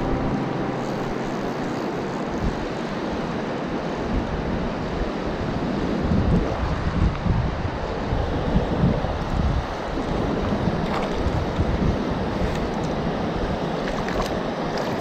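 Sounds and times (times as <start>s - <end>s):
river current rushing: 0.0s - 5.9s
wind buffeting microphone: 0.0s - 15.0s.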